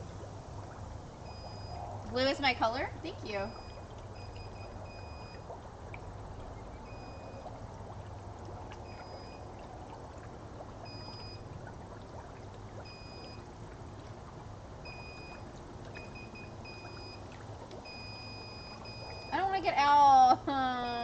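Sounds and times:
hot tub pump humming: 0.0 - 21.0
water noise: 0.0 - 21.0.

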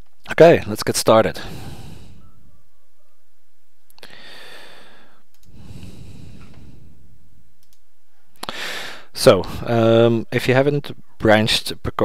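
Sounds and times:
man's quick in-breath: 1.4 - 2.3, 4.0 - 7.0, 8.4 - 9.7
mouth click: 5.3 - 5.6.

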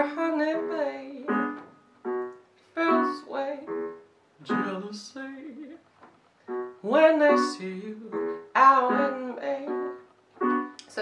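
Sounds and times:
electronic keyboard jazz chords: 0.0 - 4.8, 6.4 - 11.0.

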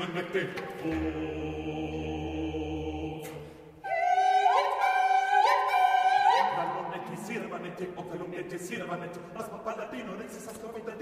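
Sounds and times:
sustained vocal chord: 0.8 - 3.7.

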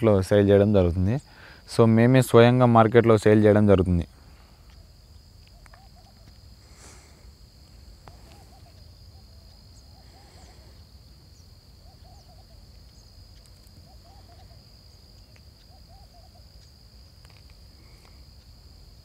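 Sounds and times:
high-pitched insect drone: 0.0 - 19.0
bird hooting: 4.7 - 7.2, 8.0 - 13.1, 13.7 - 15.0, 15.6 - 16.7.

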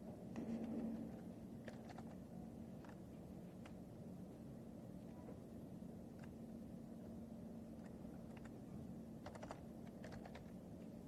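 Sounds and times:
low room hum: 0.0 - 11.0
typing on computer keyboard: 1.6 - 2.2, 9.2 - 10.6.

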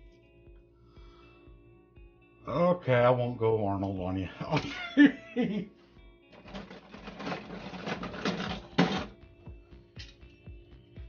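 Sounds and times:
background music with steady beat: 0.0 - 11.0
toy cars clattering: 6.4 - 9.1.

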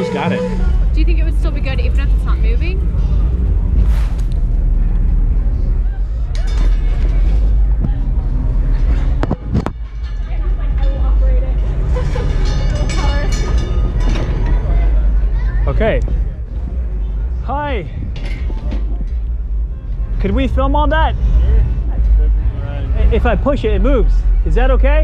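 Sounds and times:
low rumble: 0.6 - 25.0.

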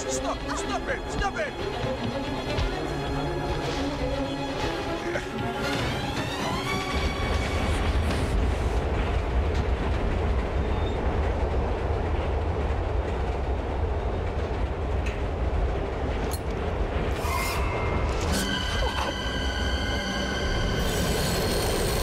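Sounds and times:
subway train rumbling: 0.0 - 22.0.

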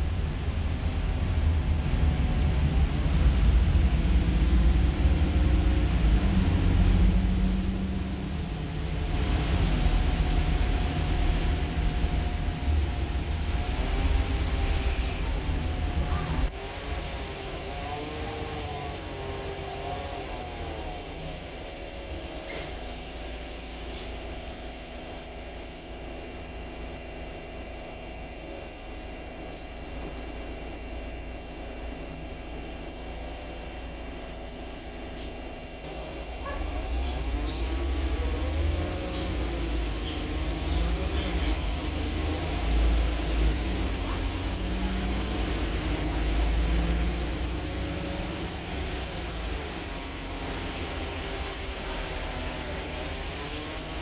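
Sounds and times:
bus diesel engine: 0.0 - 54.0
road rumble: 0.0 - 54.0.

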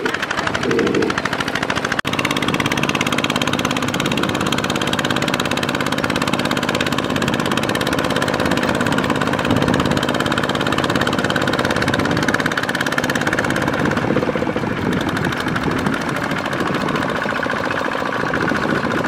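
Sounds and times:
diesel engine running under load: 0.0 - 19.0
wheels churning through mud: 0.0 - 19.0.

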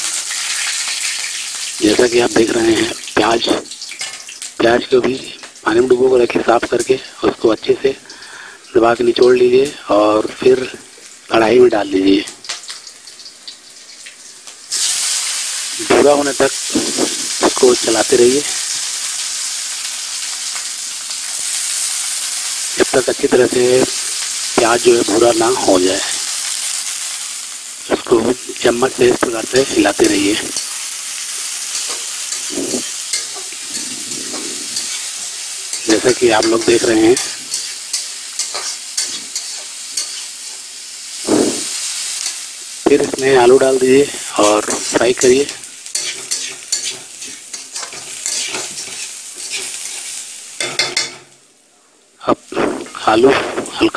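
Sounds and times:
onions sizzling in hot oil: 0.0 - 53.9
spoon scraping metal pan: 31.6 - 40.6, 44.4 - 51.3.

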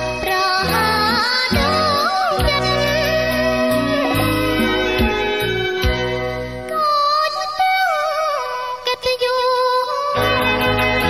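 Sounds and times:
woman singing pop ballad: 0.0 - 5.9, 6.6 - 11.0.

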